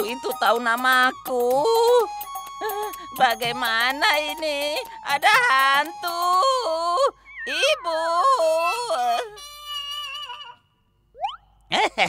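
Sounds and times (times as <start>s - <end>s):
cartoon man whimpering wail: 7.7s - 10.6s.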